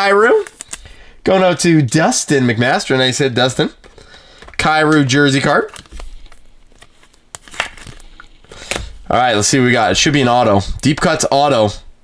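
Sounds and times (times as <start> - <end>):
plastic sleeve crinkling: 0.3 - 1.0, 3.7 - 11.3.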